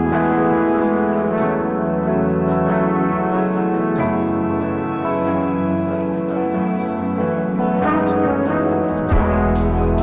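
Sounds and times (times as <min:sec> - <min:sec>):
sustained instrumental chords: 0:00.0 - 0:10.0.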